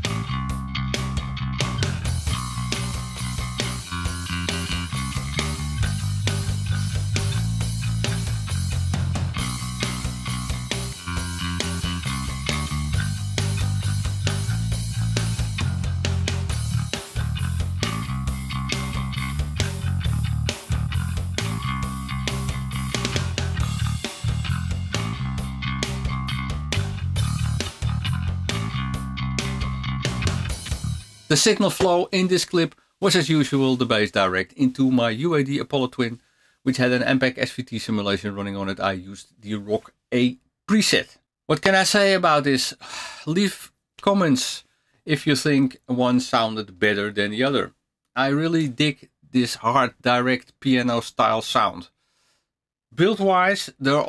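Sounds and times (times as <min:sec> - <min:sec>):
electric bass guitar line: 0:00.0 - 0:31.8.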